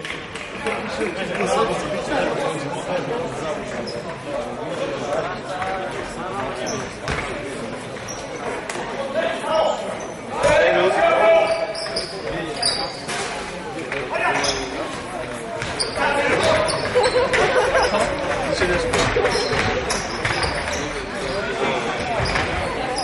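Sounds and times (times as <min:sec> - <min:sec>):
sneaker squeaks: 0:03.8 - 0:04.2, 0:06.4 - 0:07.4, 0:08.0 - 0:08.6, 0:09.5 - 0:10.5, 0:11.3 - 0:13.4, 0:14.2 - 0:18.2, 0:18.8 - 0:23.0
basketball bouncing on court: 0:07.0 - 0:07.4, 0:15.6 - 0:17.5, 0:18.7 - 0:21.4, 0:22.0 - 0:22.8.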